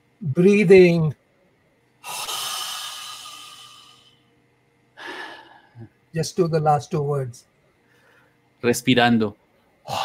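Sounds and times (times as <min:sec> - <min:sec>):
man breathing out: 0:02.0 - 0:04.2, 0:05.0 - 0:05.9.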